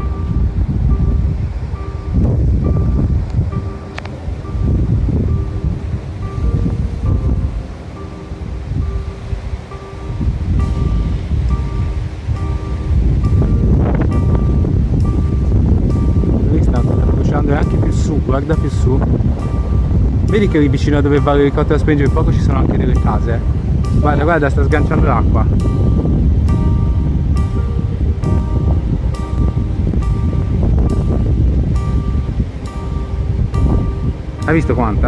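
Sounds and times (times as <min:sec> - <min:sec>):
background music: 0:00.0 - 0:35.0
wind buffeting microphone: 0:00.0 - 0:35.0.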